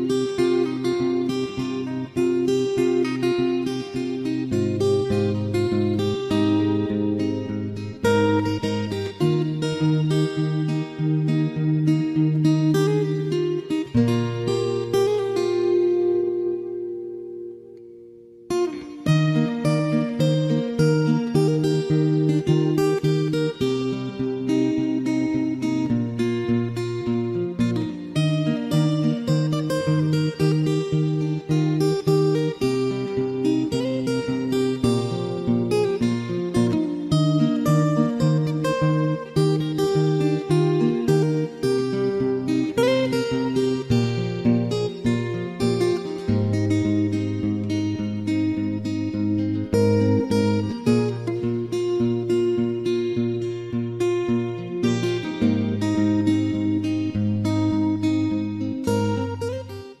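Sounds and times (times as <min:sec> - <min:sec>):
acoustic guitar music: 0:00.0 - 1:00.0.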